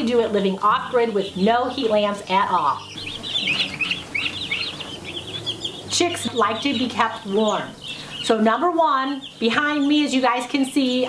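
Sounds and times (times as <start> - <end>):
baby chicks peeping: 0.0 - 11.0.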